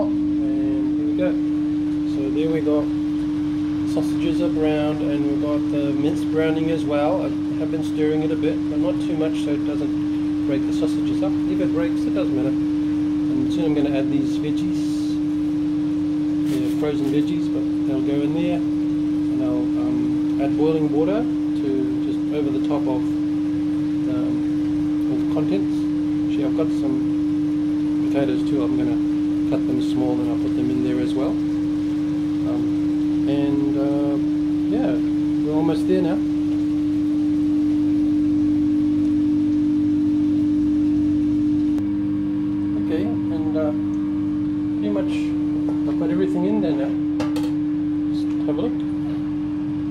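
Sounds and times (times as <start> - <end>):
constant mid-pitched machine tone: 0.0 - 49.9
low electrical hum: 0.0 - 49.9.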